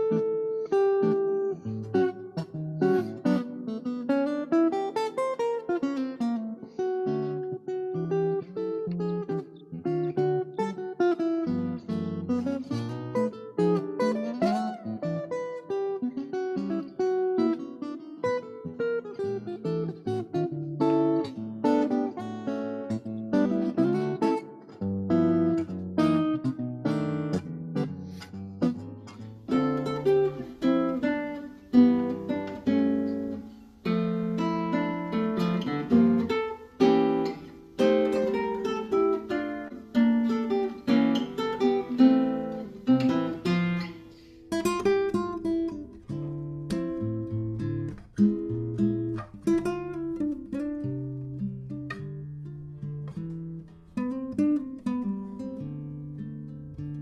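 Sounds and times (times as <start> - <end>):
fingerpicked acoustic guitar: 0.0 - 57.0.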